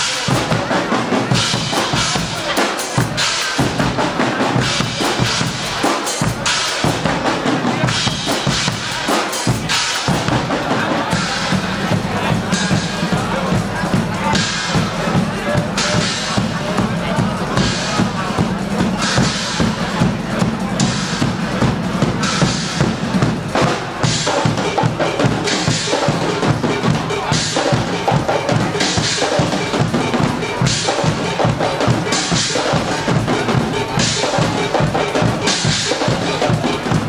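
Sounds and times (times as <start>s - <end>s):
bass drums: 0.0s - 37.0s
snare drums: 0.0s - 37.0s.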